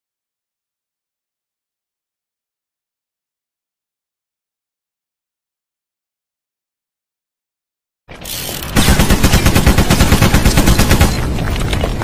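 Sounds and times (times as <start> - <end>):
rapid machine-gun fire: 8.7 - 11.5.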